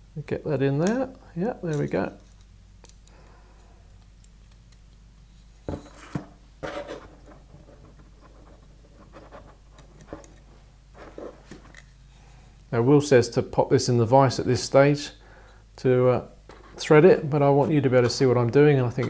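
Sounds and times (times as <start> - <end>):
faint low hum: 0.0 - 19.0.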